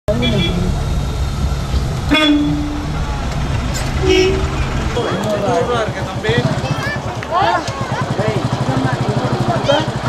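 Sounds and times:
vehicle horn toot: 0:00.1 - 0:00.7, 0:02.1 - 0:02.8, 0:04.0 - 0:04.6
vehicle engine running: 0:00.1 - 0:10.0.

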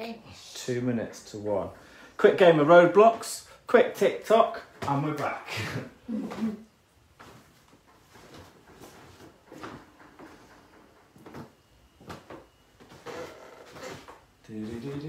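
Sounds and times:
knocks and clatters: 0:07.8 - 0:13.0.

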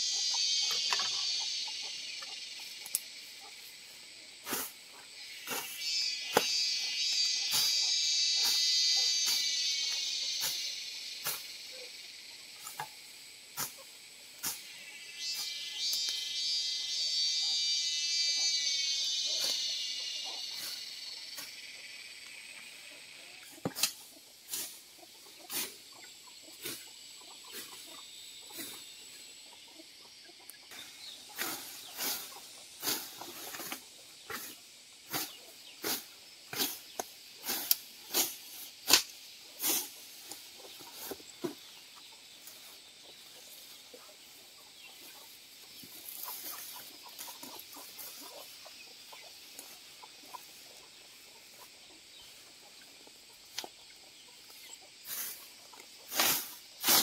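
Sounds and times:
insects buzzing: 0:00.0 - 0:57.0.

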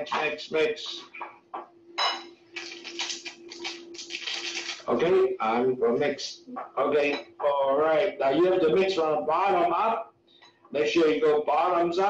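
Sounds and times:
steady low hum: 0:00.0 - 0:12.0
sugar packet crinkling: 0:02.6 - 0:04.9.

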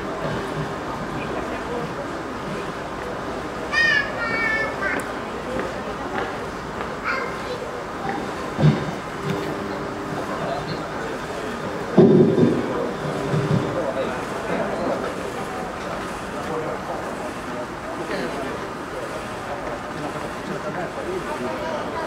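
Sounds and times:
people talking indistinctly: 0:00.0 - 0:22.0.

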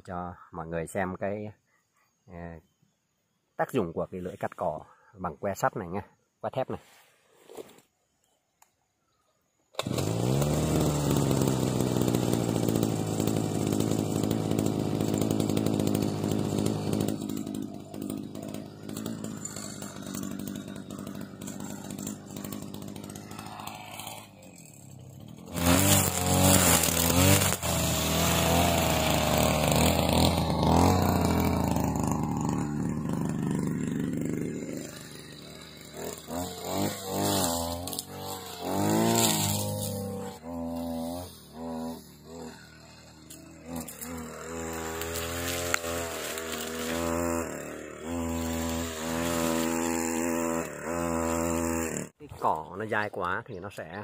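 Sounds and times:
brush cutter engine running: 0:09.7 - 0:52.4
brush cutter cutting grass: 0:09.7 - 0:52.7.

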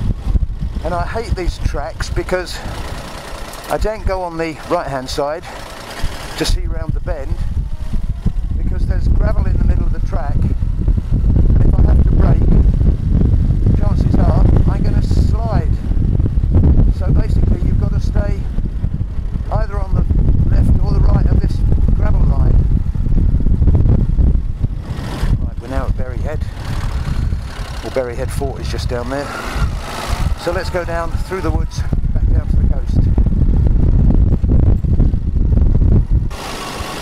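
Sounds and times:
motorcycle engine: 0:00.0 - 0:37.0
wind noise rumble: 0:00.0 - 0:37.0.

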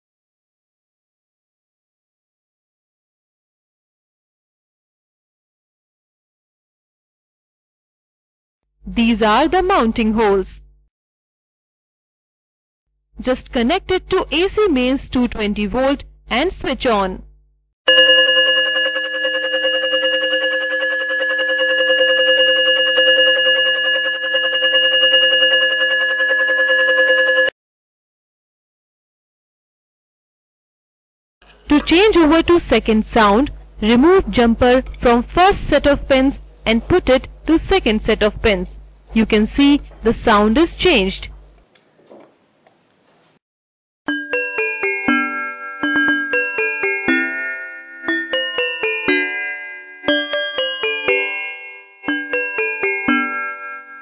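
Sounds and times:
electronic gong bell ringing: 0:17.9 - 0:27.5, 0:44.1 - 0:54.0.

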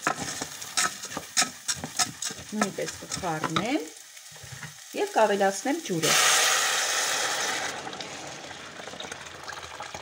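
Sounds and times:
water pouring into hot pan: 0:03.3 - 0:10.0.

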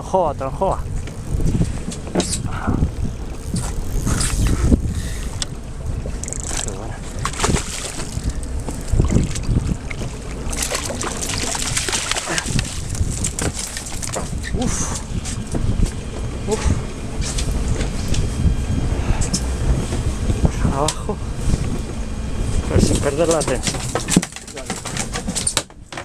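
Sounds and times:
wind buffeting microphone: 0:00.0 - 0:24.2
water slapping boat hull: 0:00.0 - 0:26.0
fish splashing at surface: 0:06.1 - 0:15.4.

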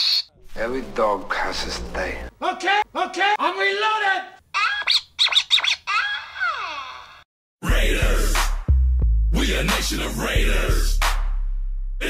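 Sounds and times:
high-pitched choppy voice-like sounds: 0:04.5 - 0:07.2.

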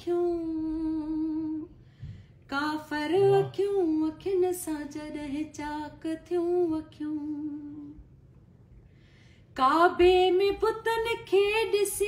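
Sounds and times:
woman singing a long note: 0:02.9 - 0:04.1.

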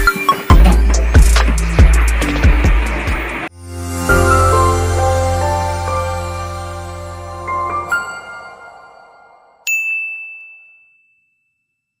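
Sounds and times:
high bell-like chime: 0:07.6 - 0:12.0.

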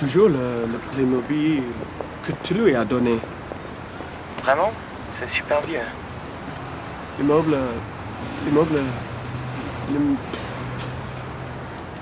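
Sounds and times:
city street hum: 0:00.0 - 0:12.0.

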